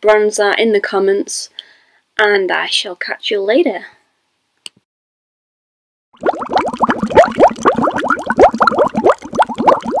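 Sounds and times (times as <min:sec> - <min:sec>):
bubbly bloop sound effects: 0:06.2 - 0:10.0.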